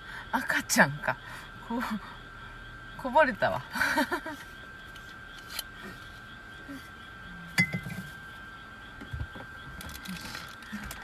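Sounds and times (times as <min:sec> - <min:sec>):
glass clinking with short ring: 0:07.6 - 0:07.9.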